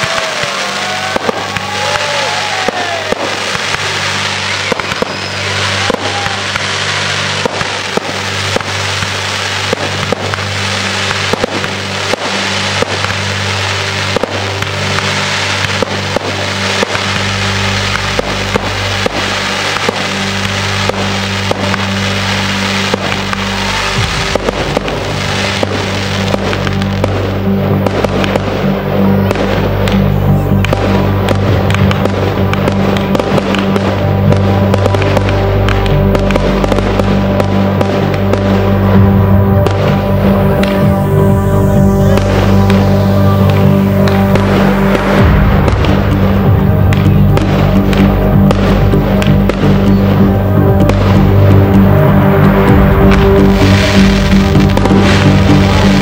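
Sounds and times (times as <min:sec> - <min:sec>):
fireworks bangs and crackles: 0:00.0 - 0:56.0
music with sustained low notes: 0:00.0 - 0:56.0.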